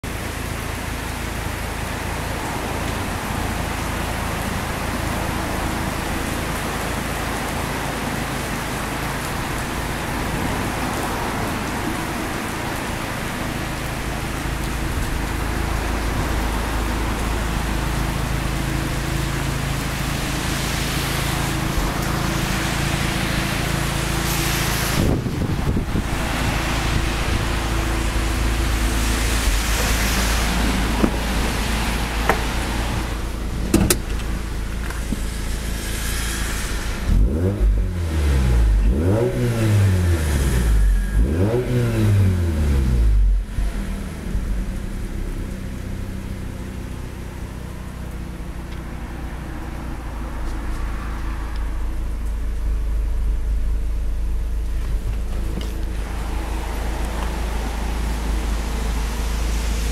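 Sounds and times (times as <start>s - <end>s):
constant hiss: 0.1s - 59.9s.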